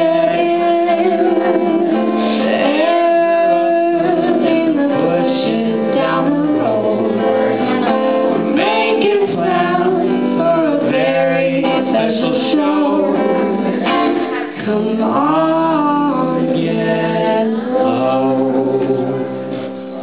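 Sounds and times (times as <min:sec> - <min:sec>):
woman and man singing duet: 0:00.0 - 0:19.6
guitar: 0:00.0 - 0:20.0.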